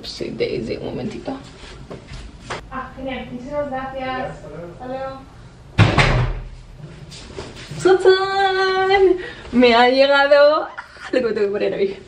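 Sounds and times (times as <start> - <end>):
door shutting with thud: 5.8 - 6.6.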